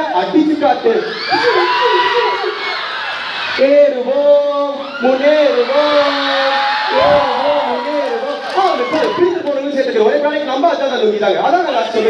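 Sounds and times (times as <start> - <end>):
crowd noise: 0.0 - 12.0
audience whoops: 1.0 - 3.8, 4.7 - 9.5
men's voices calling out together: 5.9 - 9.3.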